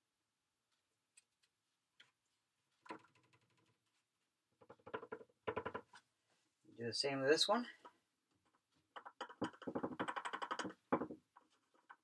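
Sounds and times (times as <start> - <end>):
plastic mold rattling on wood: 4.6 - 6.0, 8.9 - 12.0.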